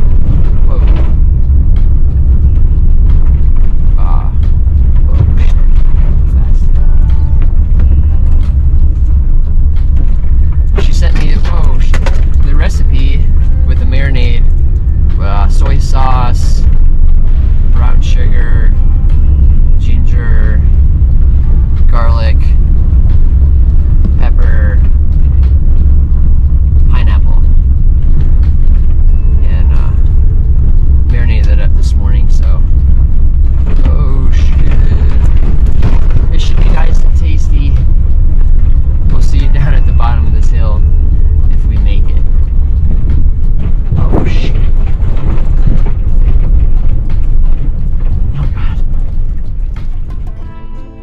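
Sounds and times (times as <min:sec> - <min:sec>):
loud low rumble: 0:00.0 - 0:51.0
person speaking: 0:36.2 - 0:37.8, 0:44.0 - 0:44.8.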